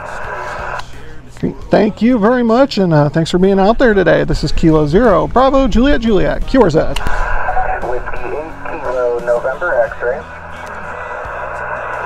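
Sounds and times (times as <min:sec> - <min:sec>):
weak radio voice: 0:00.0 - 0:00.8, 0:06.9 - 0:12.0
radio static hiss: 0:00.0 - 0:01.1, 0:05.3 - 0:12.0.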